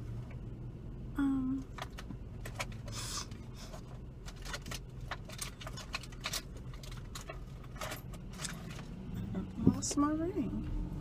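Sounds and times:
car low steady hum: 0.0 - 11.0
hand rummaging clicks and rustles: 1.7 - 8.9.

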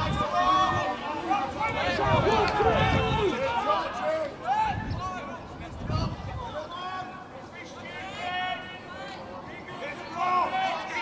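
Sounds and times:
voices shouting and calling out: 0.0 - 11.0.

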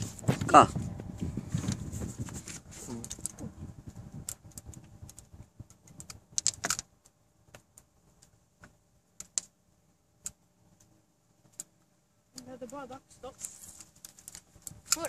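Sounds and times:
rumbling handling noise: 0.0 - 9.6.

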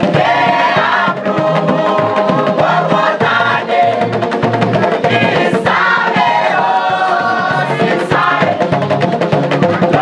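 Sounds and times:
bamboo band beat and bass: 0.0 - 10.0
group singing in chorus: 0.0 - 10.0.

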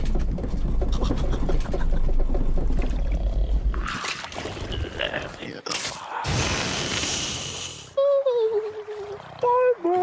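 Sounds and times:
low rumble with rattling: 0.0 - 3.9
brief watery hiss: 6.4 - 7.9.

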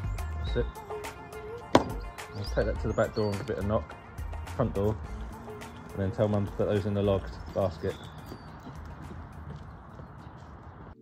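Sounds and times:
faint footsteps on paving: 5.4 - 11.0.

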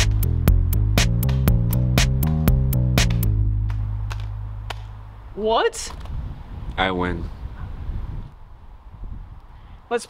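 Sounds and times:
low bass background music: 0.0 - 5.4.

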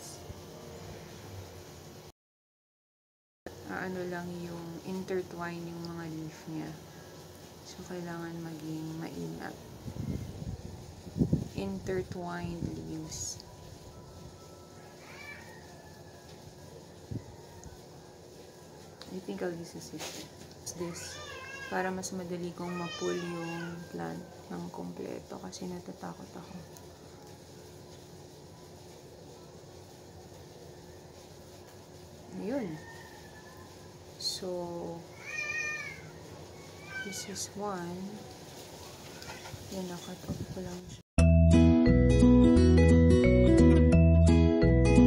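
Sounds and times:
cat meowing: 35.1 - 36.2, 36.8 - 37.4.

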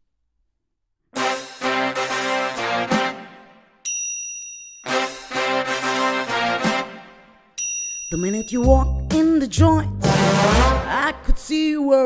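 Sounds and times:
high bell-like ding: 3.8 - 5.3, 7.6 - 9.1
chord stabs: 10.0 - 11.0.

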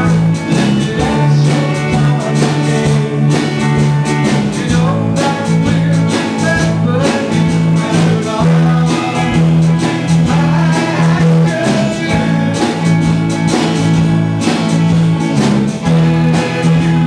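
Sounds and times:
live country-pop band: 0.0 - 17.0.

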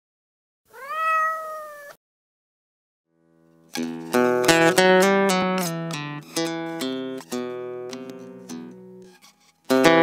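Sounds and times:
rising meow-like call: 0.7 - 2.0.

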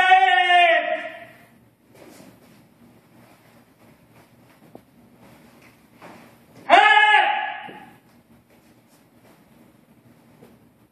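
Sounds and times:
loud drawn-out shout: 0.0 - 1.5, 6.6 - 8.0.

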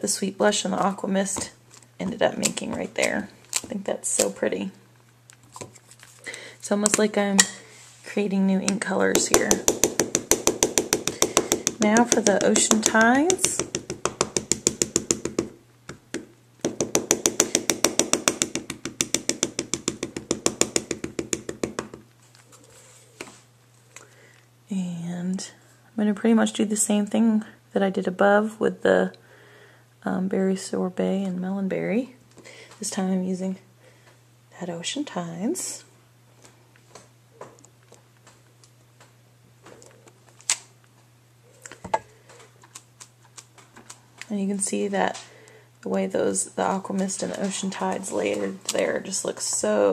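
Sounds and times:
ink pad tapping on stamp: 9.2 - 22.0.

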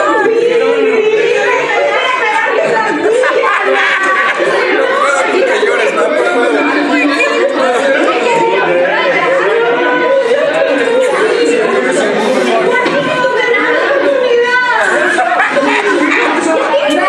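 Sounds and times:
overlapping conversation: 0.0 - 17.0.

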